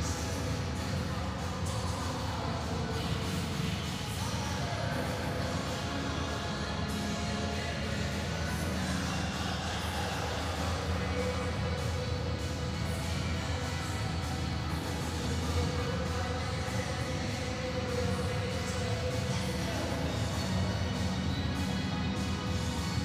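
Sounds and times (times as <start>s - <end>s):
strong steady bass: 0.0s - 23.0s.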